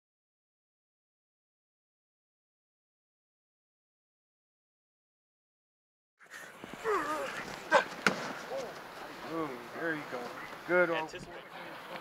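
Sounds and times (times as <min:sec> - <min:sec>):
players shouting calls: 0:06.8 - 0:11.1.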